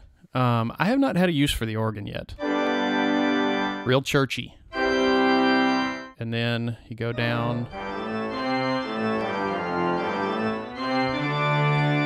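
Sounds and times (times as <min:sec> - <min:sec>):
church organ chords: 0:02.4 - 0:04.0, 0:04.7 - 0:06.2, 0:07.1 - 0:12.0.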